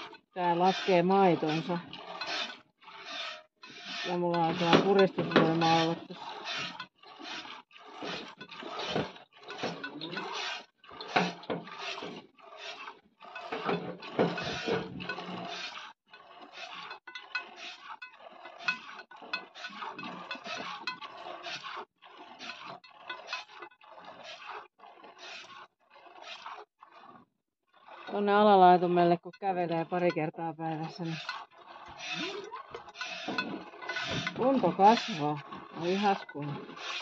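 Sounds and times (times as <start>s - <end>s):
milk squirting into a pail: 0.0s - 28.8s, 30.8s - 37.0s.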